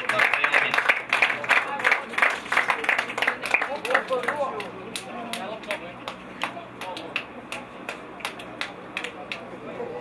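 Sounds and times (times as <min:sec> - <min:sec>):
people clapping in rhythm: 0:00.0 - 0:09.6.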